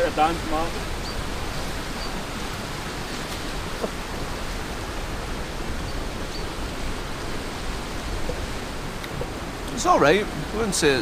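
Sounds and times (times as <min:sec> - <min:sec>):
rushing rocky river: 0:00.0 - 0:11.0.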